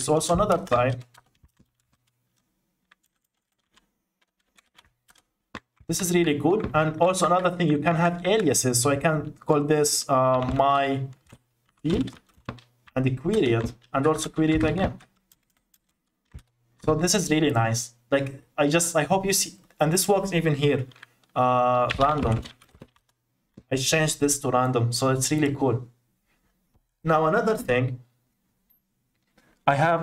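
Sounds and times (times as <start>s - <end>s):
computer keyboard keystrokes: 0.3s - 5.9s, 10.3s - 16.6s, 20.9s - 23.2s.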